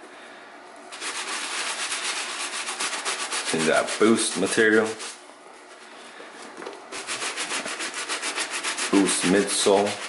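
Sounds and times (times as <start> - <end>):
brush scrubbing a wet sneaker: 0.9 - 5.2, 7.0 - 10.0.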